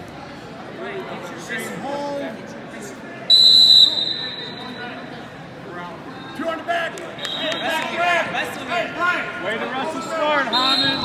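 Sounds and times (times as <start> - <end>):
whistle blast: 3.3 - 4.8, 10.5 - 11.0.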